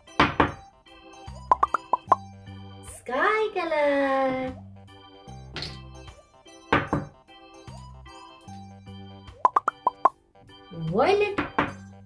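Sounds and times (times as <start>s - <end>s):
soft background music: 0.0s - 12.0s
quick pitched plops: 1.5s - 2.2s, 9.5s - 10.1s.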